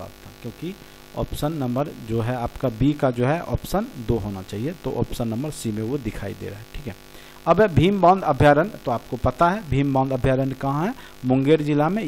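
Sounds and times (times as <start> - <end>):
electrical mains hum: 0.0 - 12.0
man lecturing: 0.0 - 12.0.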